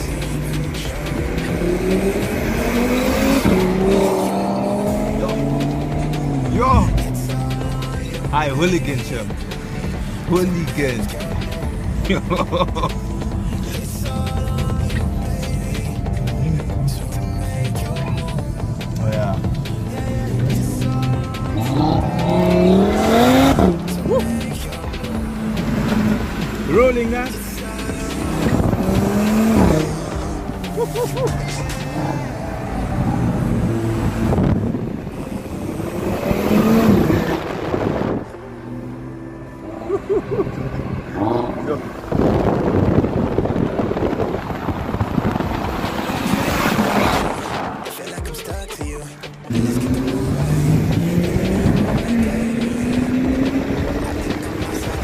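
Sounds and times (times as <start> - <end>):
car engines accelerating hard: 0.0 - 55.0.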